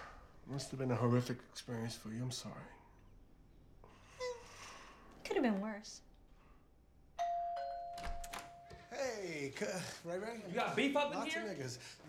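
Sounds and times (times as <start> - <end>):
two-tone doorbell chime: 7.2 - 9.0.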